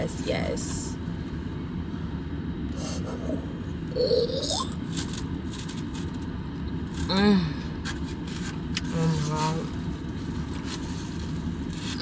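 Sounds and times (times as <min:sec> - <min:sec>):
car heater blowing: 0:00.0 - 0:12.0
taco crunching while chewed: 0:03.9 - 0:12.0.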